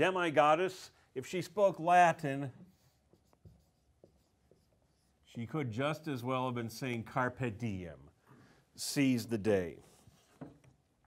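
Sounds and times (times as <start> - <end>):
marker writing on whiteboard: 2.6 - 5.3, 9.8 - 10.9.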